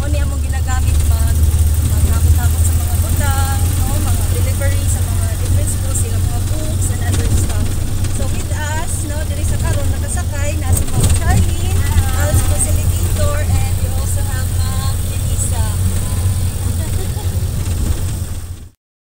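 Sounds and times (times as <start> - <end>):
passengers chatting: 0.0 - 18.6
road noise: 0.0 - 18.8
vehicle engine drone: 0.0 - 18.8.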